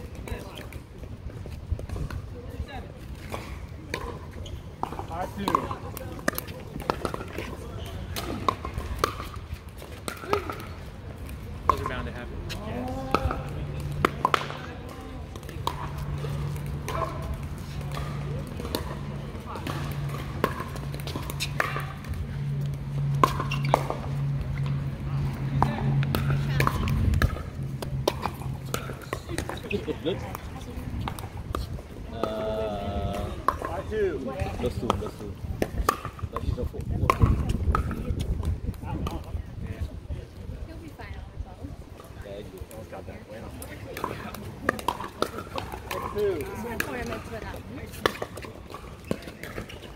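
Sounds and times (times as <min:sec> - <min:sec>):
ball bouncing on hard court: 0:03.2 - 0:32.4, 0:33.1 - 0:39.4.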